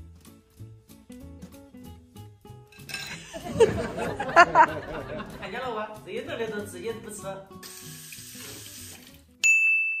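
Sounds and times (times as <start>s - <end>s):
tap water running into sink: 7.6s - 9.2s
bell-like chime ding: 9.4s - 10.0s.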